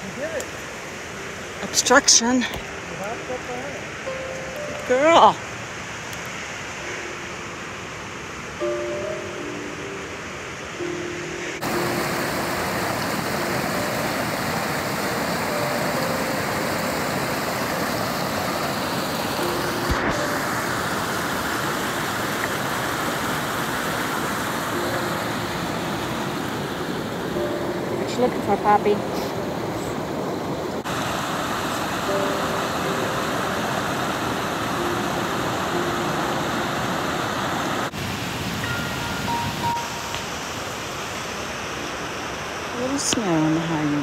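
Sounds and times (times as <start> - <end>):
stream rushing over rocks: 0.0 - 44.0.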